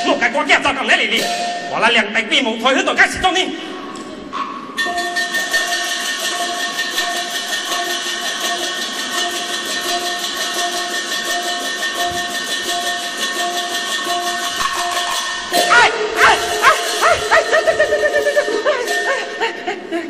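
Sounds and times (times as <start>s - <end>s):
gongs ringing: 0.0s - 2.4s, 3.8s - 20.0s
percussion band drum and cymbals: 1.1s - 1.8s, 4.4s - 19.4s.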